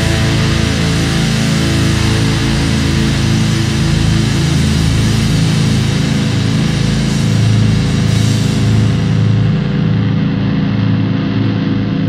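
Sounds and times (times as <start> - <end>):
drum kit: 0.0 - 10.0
heavy electric guitars: 0.0 - 12.0.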